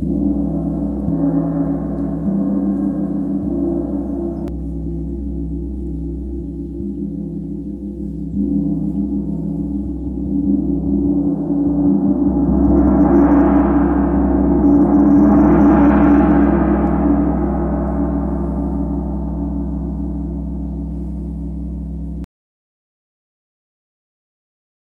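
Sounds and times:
gong played with soft mallet: 0:00.0 - 0:22.3.

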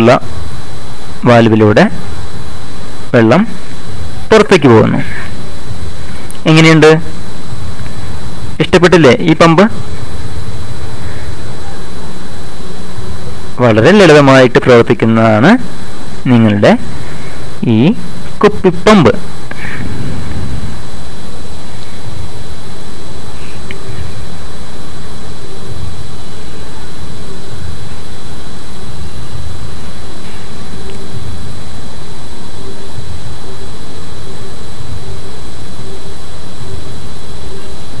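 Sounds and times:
loud steady rushing noise: 0:00.0 - 0:35.5
faint high-pitched whine: 0:00.0 - 0:38.0.

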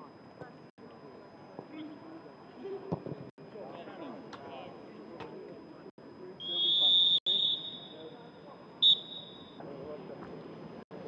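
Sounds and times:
referee whistle blasts: 0:06.4 - 0:08.1, 0:08.8 - 0:09.6.

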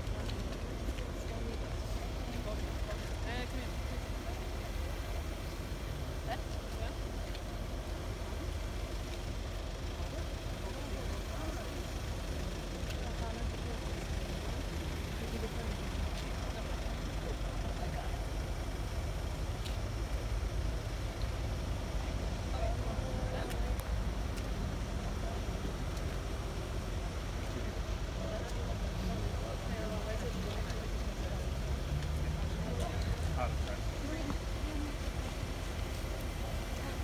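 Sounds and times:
indistinct crowd chatter: 0:00.0 - 0:37.0.

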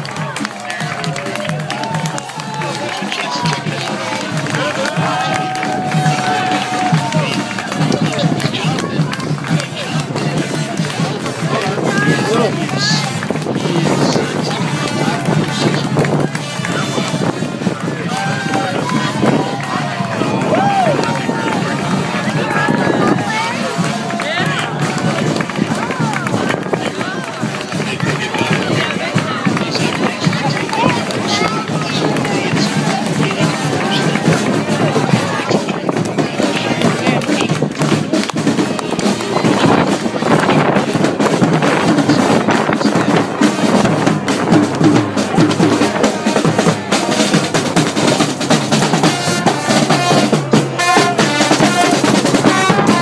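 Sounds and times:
crowd cheering and whooping: 0:00.0 - 0:08.3, 0:18.0 - 0:25.2
band playing: 0:00.0 - 0:53.0
crowd talking and cheering: 0:00.0 - 0:53.0.

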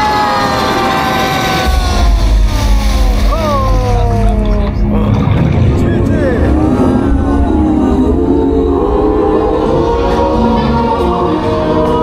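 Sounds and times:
deep steady rumble: 0:01.6 - 0:10.6.

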